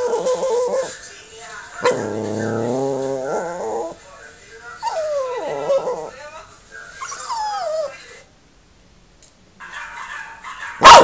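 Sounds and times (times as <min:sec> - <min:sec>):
dog whining howl: 0:00.0 - 0:00.9, 0:04.8 - 0:06.1, 0:07.0 - 0:07.9
dog sounds through speaker: 0:09.6 - 0:11.0.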